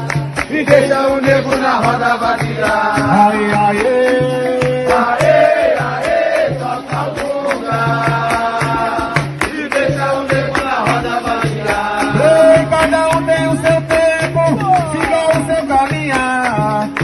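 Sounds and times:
berimbau and percussion: 0:00.0 - 0:17.0
people singing: 0:00.0 - 0:17.0.

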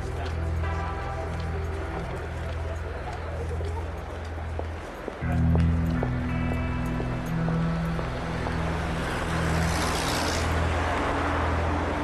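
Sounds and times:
dark synth pad: 0:00.0 - 0:04.6, 0:05.2 - 0:12.0
vehicle passing: 0:05.3 - 0:12.0.

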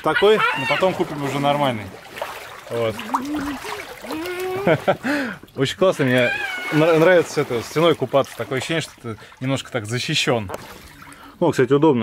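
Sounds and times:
pool water splashing: 0:00.0 - 0:12.0
child calling out wordlessly: 0:03.0 - 0:04.6.

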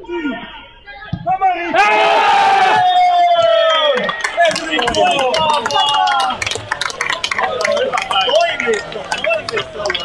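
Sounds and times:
people shouting: 0:01.7 - 0:04.0
long celebratory shout: 0:01.7 - 0:06.5.

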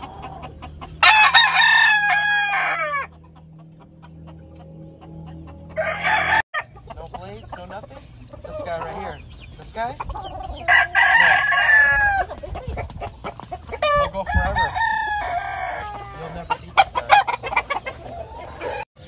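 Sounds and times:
roosters crowing: 0:00.0 - 0:04.3, 0:05.4 - 0:06.8, 0:09.8 - 0:18.9
chickens clucking: 0:00.0 - 0:19.0.

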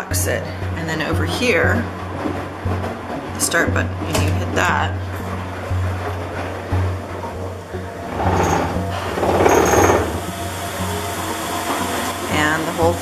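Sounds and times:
spin extractor motor running: 0:08.0 - 0:11.3.

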